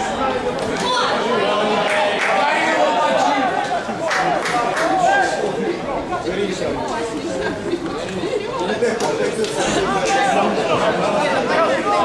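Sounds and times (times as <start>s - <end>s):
many voices talking and calling: 0.0s - 12.0s.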